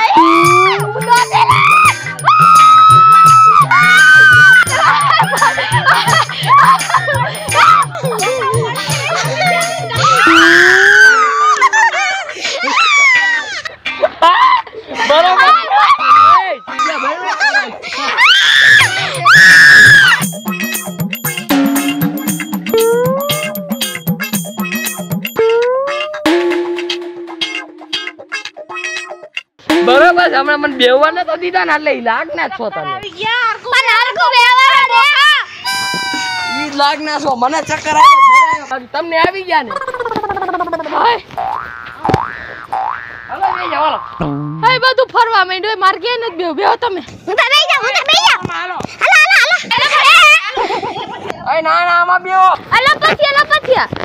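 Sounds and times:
people screaming: 0.0s - 8.4s, 9.1s - 14.7s, 15.5s - 20.2s, 35.6s - 36.8s, 38.0s - 38.7s
rising boing glides: 20.0s - 28.6s, 29.7s - 30.8s.

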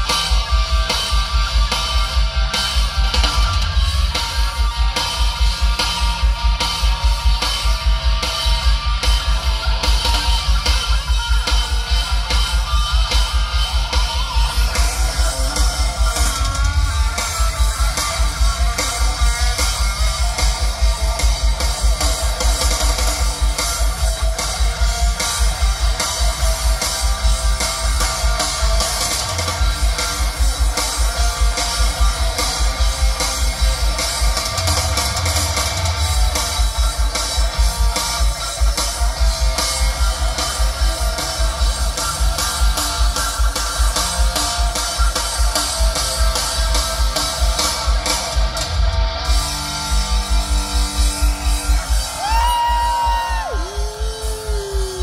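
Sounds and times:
drum kit beat: 0.0s - 55.0s
electric guitars: 0.0s - 55.0s.

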